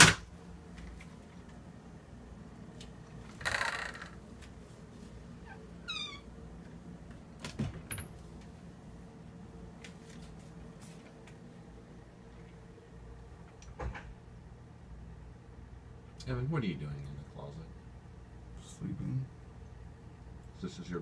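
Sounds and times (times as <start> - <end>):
closet doors squeaking: 3.3 - 4.2, 5.4 - 6.3.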